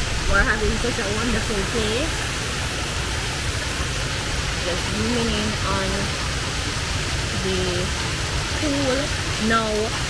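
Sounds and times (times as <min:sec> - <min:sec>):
waterfall splashing into pool: 0:00.0 - 0:10.0
woman speaking: 0:00.2 - 0:02.2, 0:04.6 - 0:06.2, 0:07.3 - 0:07.9, 0:08.6 - 0:10.0.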